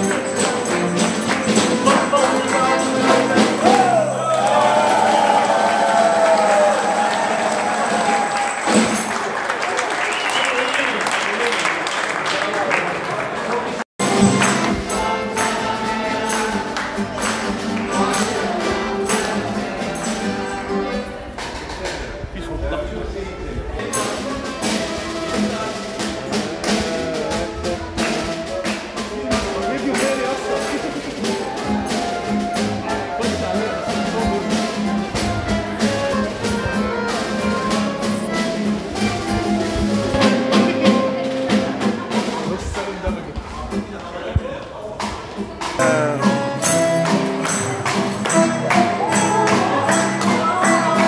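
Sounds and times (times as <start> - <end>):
light percussion: 0.0 - 5.0, 14.0 - 22.6, 23.8 - 51.0
accordion: 14.0 - 21.6, 23.8 - 42.2, 45.8 - 51.0
group of voices singing: 14.1 - 21.5, 49.0 - 51.0
plucked lute: 23.8 - 42.5, 45.0 - 51.0
clarinet: 31.2 - 41.4.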